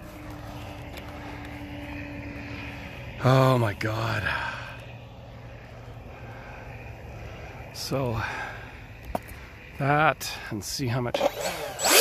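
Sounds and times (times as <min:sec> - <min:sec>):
electric ducted fan humming: 0:00.0 - 0:12.0.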